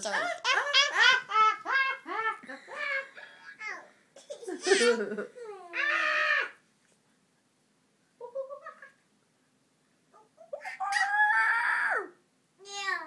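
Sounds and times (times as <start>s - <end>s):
baby squealing: 10.5s - 11.8s.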